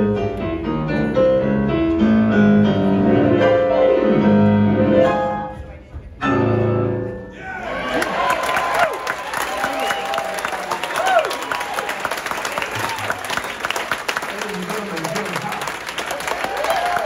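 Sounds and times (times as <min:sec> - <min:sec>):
people cheering: 0:07.4 - 0:17.0
audience clapping: 0:07.8 - 0:17.0.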